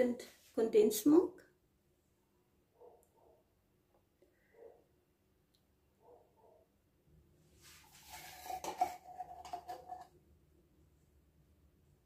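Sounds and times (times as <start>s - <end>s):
metal spoon scraping tin: 7.8s - 10.1s.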